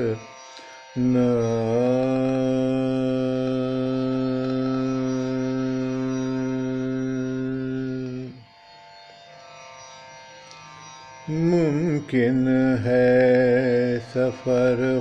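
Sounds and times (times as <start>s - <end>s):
man singing a long held note: 0.0s - 0.3s, 1.0s - 8.4s, 11.3s - 15.0s.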